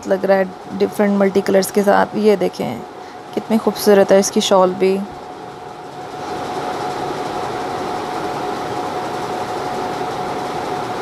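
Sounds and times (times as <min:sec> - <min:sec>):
mid-pitched hum: 0:00.0 - 0:11.0
mechanical whooshing noise: 0:05.1 - 0:11.0.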